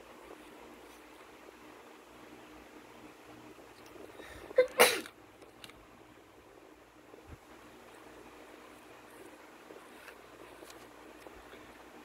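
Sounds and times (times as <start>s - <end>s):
person sneezing: 4.5s - 5.1s.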